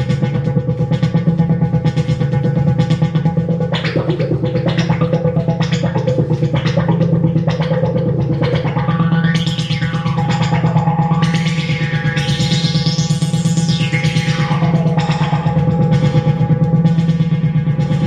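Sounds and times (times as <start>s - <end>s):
steady low synth tone: 0.0s - 18.0s
synthesizer arpeggio: 1.8s - 18.0s.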